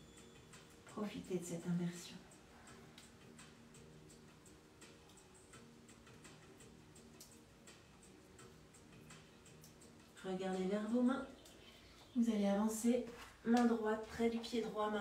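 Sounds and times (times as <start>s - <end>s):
faint regular ticking: 1.9s - 12.2s.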